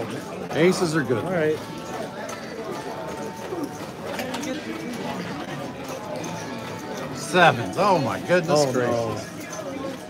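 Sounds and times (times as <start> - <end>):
indistinct background voices: 0.0 - 10.0.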